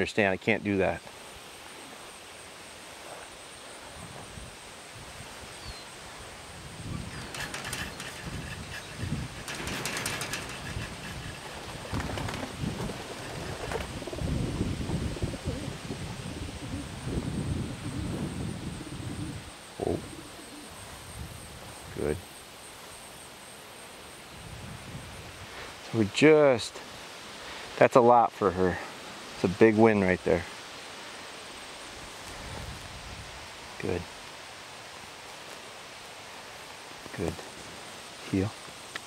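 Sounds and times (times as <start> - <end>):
birds fluttering and rustling: 1.1 - 17.2, 28.7 - 39.0
wings beating: 6.9 - 14.2.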